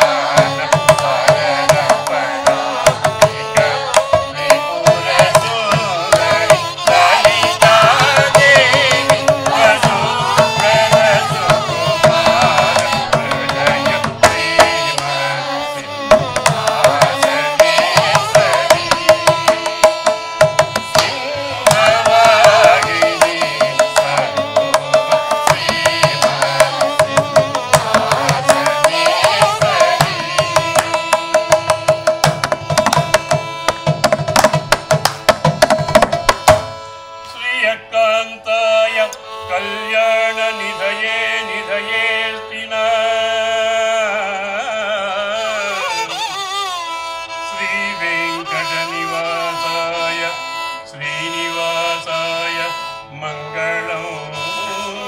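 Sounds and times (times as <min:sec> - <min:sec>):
women singing in chorus: 0:00.0 - 0:31.1
violin accompaniment: 0:00.0 - 0:55.0.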